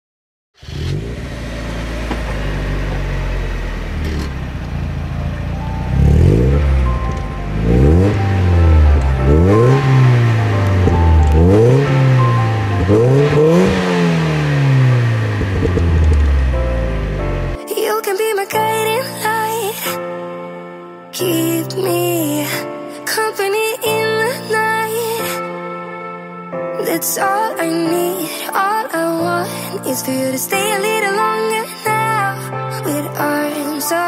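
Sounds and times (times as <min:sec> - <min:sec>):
car engine idling and revving: 0:00.6 - 0:17.6.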